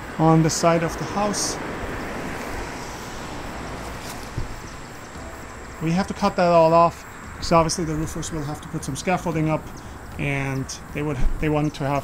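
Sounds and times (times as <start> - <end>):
soft thump: 4.0 - 4.8.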